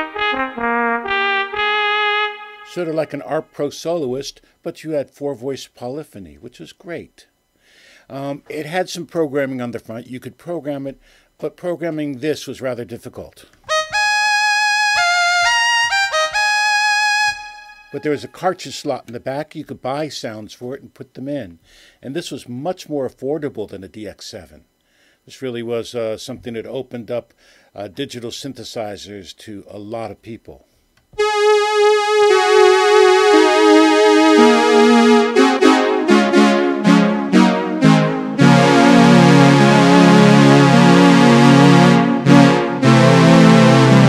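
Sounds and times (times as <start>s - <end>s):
synthesizer playing bright chords: 0.0s - 3.5s, 13.7s - 18.4s, 31.2s - 44.0s.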